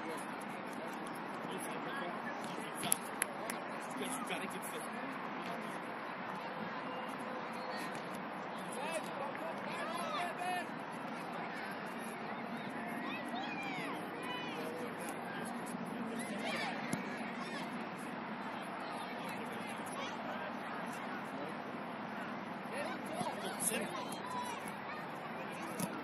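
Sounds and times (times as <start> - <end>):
distant indistinct voices: 0.0 - 26.0
outdoor background noise: 0.0 - 26.0.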